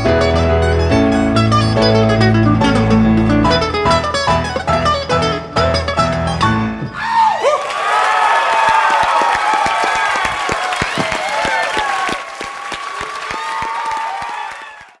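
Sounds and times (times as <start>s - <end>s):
audience applauding and cheering: 6.9s - 15.0s.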